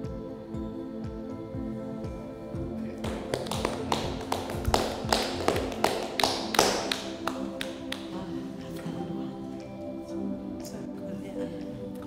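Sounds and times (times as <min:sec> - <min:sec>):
music with held notes: 0:00.0 - 0:12.0
sharp irregular taps: 0:03.0 - 0:08.1.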